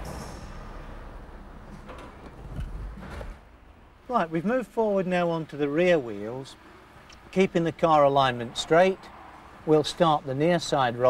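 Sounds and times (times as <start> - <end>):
low rumble: 0.0 - 4.1.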